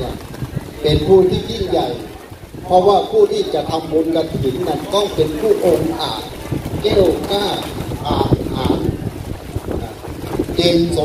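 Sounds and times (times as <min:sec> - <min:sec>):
man speaking: 0:00.0 - 0:00.2, 0:00.8 - 0:09.0, 0:10.6 - 0:11.0
low rumbling wind noise: 0:00.0 - 0:11.0.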